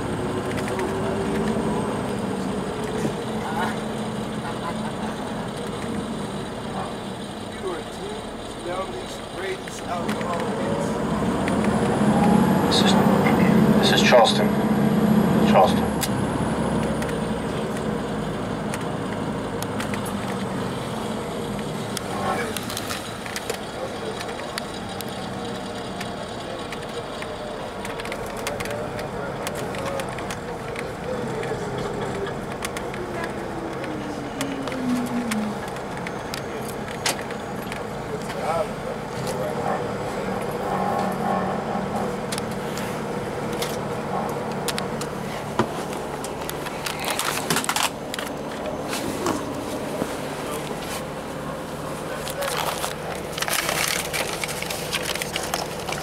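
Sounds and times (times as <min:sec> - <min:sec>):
interior rattles and clicks: 0:00.0 - 0:14.7, 0:15.4 - 0:56.0
diesel engine running: 0:00.0 - 0:56.0
road and tyre noise: 0:00.0 - 0:56.0.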